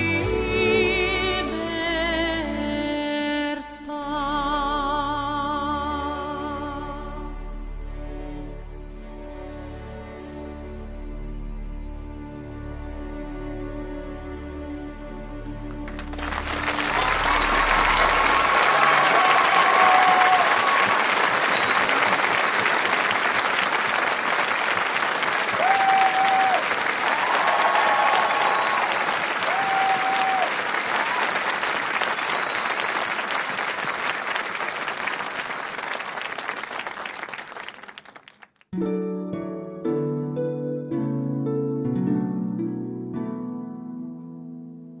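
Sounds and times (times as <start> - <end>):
audience applauding: 15.6 - 38.7
short cheers: 16.5 - 33.9.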